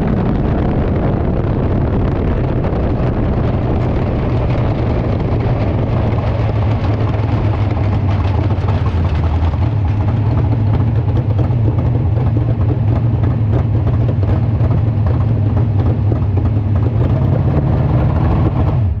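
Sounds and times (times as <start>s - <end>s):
race car engine idling: 0.0s - 19.0s.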